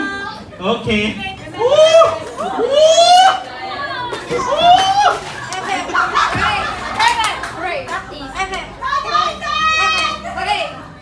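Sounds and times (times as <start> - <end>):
women chattering and laughing: 0.0 - 9.1.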